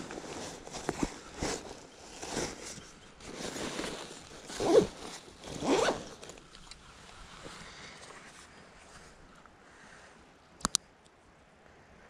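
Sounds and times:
backpack zipper being pulled: 4.4s - 6.4s.

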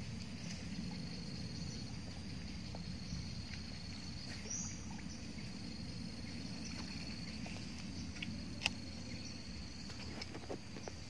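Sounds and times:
low rumble: 0.0s - 10.0s
insect drone: 0.0s - 11.0s.

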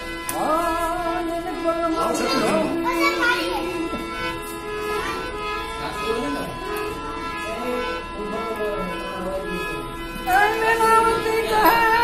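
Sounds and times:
harmonium playing held notes: 0.0s - 12.0s
man singing: 0.3s - 2.9s, 7.4s - 12.0s.

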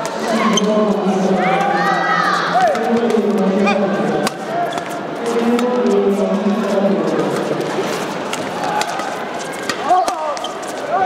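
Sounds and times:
murmur of crowd voices: 0.0s - 11.0s
shoe squeaks on court floor: 9.4s - 10.8s.

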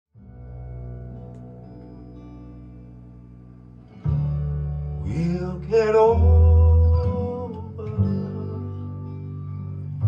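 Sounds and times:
held chord with guitar: 0.2s - 10.0s.

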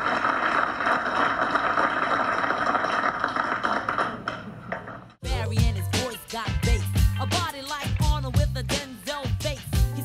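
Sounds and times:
people applauding: 0.0s - 4.9s.

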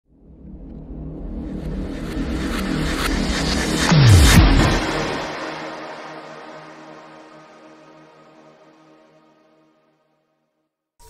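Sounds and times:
rumbling whoosh: 1.4s - 6.5s
falling bass drop: 1.7s - 6.2s.

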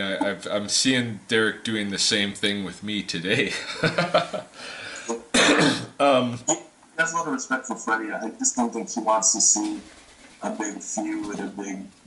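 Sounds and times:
man laughing: 3.5s - 4.5s.

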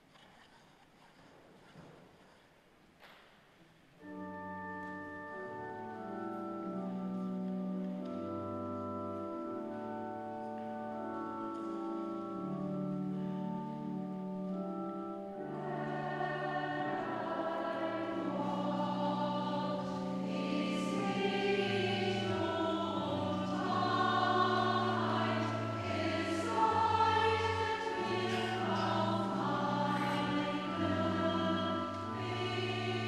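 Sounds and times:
pipe organ bass notes: 4.2s - 33.0s
mixed choir singing: 15.4s - 33.0s.

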